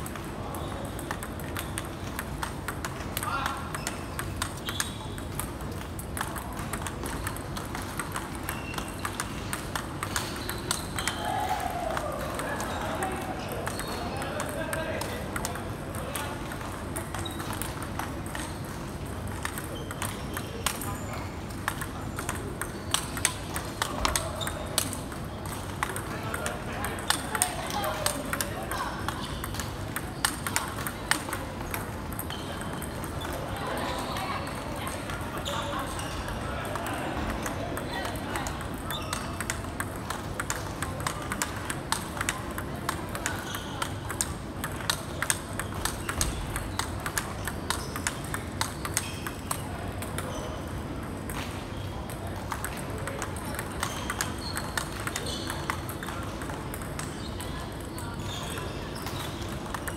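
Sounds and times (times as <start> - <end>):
table tennis balls clicking: 0.0 - 59.9.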